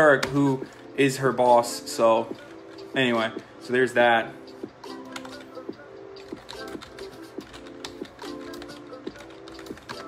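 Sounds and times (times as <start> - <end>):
quiet background music: 0.0 - 10.0
keyboard typing: 4.8 - 10.0.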